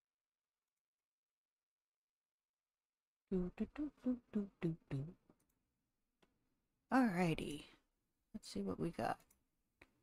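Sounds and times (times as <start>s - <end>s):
woman singing: 3.3s - 5.2s.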